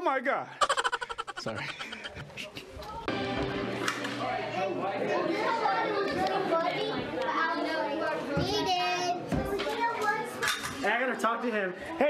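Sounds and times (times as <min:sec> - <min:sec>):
child laughing: 0:00.6 - 0:02.3
children chattering and calling out: 0:05.0 - 0:10.5.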